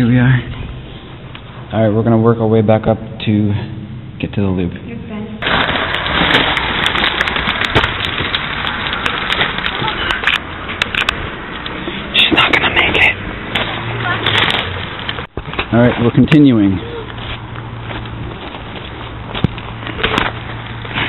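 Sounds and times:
small stone clicks and clatters: 0:05.5 - 0:11.2
footsteps crunching on gravel: 0:13.6 - 0:21.0.

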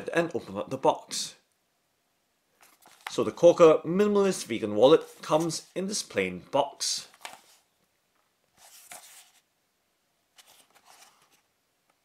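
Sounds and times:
cardboard box rustling in hands: 0:02.6 - 0:03.2, 0:08.5 - 0:09.5, 0:10.4 - 0:11.5.

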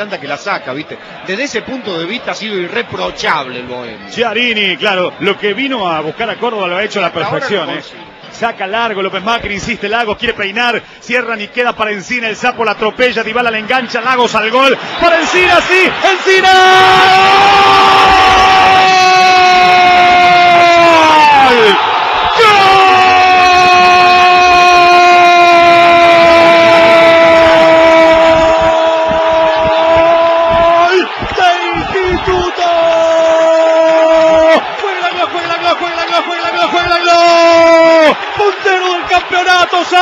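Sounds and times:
man shouting goal cry: 0:15.0 - 0:40.0.

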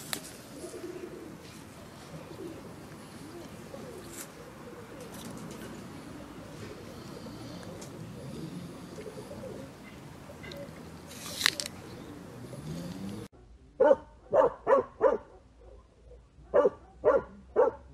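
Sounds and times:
bird cooing: 0:00.4 - 0:13.3
tortoise chewing apple: 0:05.9 - 0:13.3.

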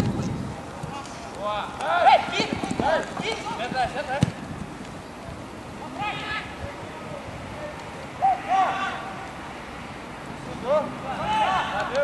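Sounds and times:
footballers shouting calls: 0:00.8 - 0:04.5, 0:05.2 - 0:12.0.

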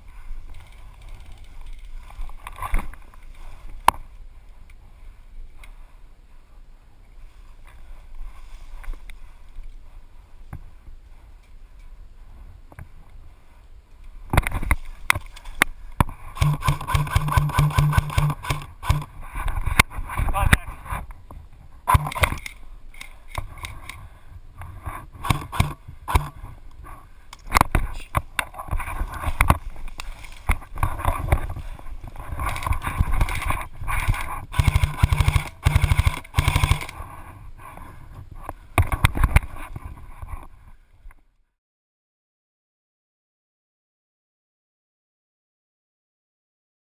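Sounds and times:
rustling through tall grass: 0:00.0 - 0:22.3, 0:24.7 - 0:37.7
airsoft gunfire bursts: 0:16.4 - 0:19.1, 0:25.2 - 0:26.4, 0:34.5 - 0:36.9.

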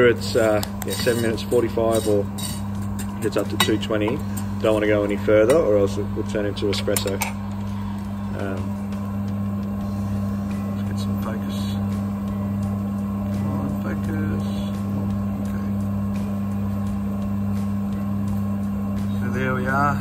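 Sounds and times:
electric motor and fan humming: 0:00.0 - 0:20.0.

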